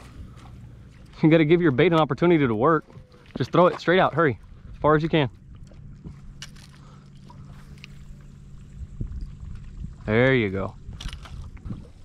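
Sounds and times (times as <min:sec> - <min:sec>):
boat motor humming: 0:00.0 - 0:12.0
wind and water rumble: 0:00.0 - 0:12.0.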